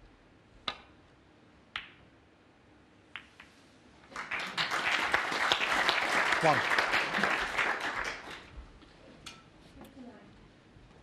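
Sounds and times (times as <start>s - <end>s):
snooker balls clicking: 0.6s - 1.0s, 1.7s - 2.1s, 3.1s - 3.6s.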